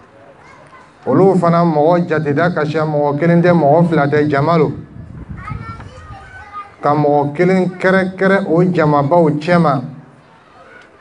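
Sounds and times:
faint children's voices: 0.0s - 11.0s
man speaking: 1.1s - 4.8s, 6.8s - 10.1s.

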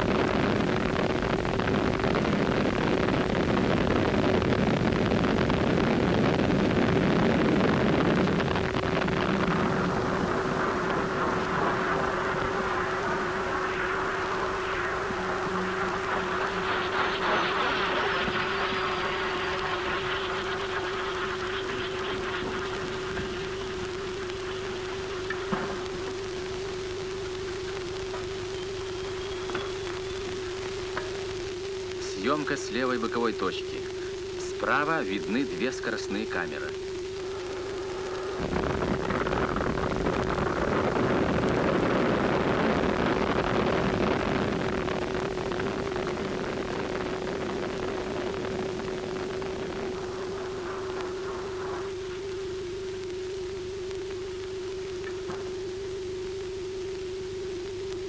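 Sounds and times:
rocket boosters roaring: 0.0s - 52.4s
steady hum: 0.0s - 58.0s.

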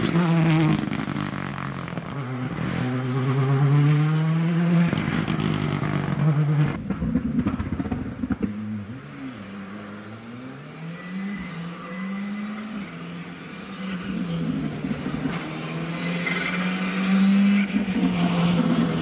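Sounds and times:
distant rally car engine: 0.0s - 19.0s
rally car engine at full throttle: 0.0s - 19.0s.

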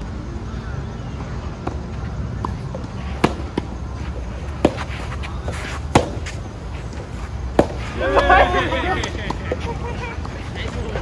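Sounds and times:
racket hitting tennis ball: 2.4s - 8.4s.

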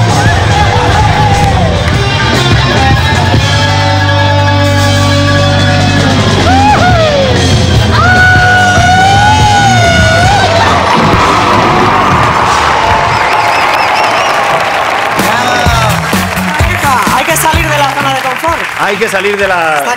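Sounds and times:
crowd cheering and applauding: 0.0s - 4.4s, 5.4s - 19.9s
heavy metal band playing: 0.0s - 12.8s, 15.2s - 18.1s.

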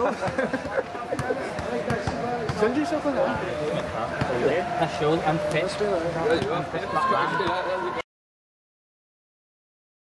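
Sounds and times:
men talking and calling: 0.0s - 8.0s.

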